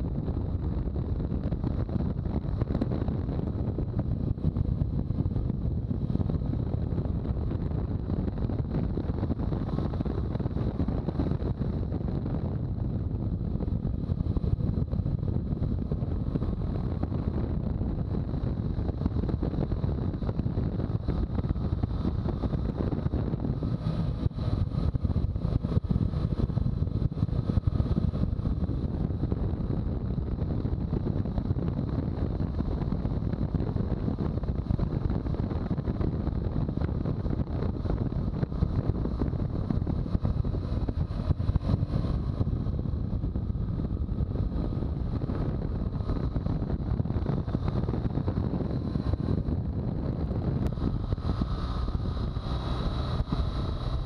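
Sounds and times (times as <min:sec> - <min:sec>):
motorcycle engine and tyre noise: 0:00.0 - 0:54.0
wind buffeting microphone: 0:00.0 - 0:54.0.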